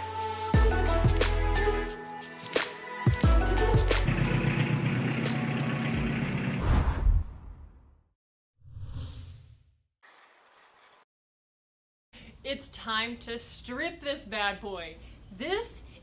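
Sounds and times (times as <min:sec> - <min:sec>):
short whoosh: 0:06.6 - 0:07.7.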